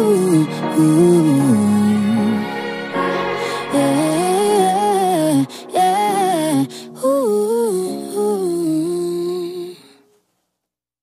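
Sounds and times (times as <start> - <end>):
woman singing wordless line: 0.0 - 10.0.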